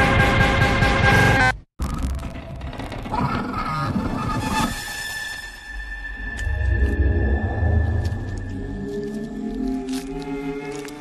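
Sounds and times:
tense horror music: 0:00.0 - 0:11.0.

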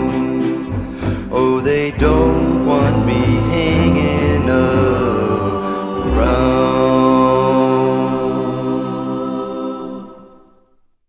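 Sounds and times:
pop band and group vocals chord: 0:00.0 - 0:10.5.

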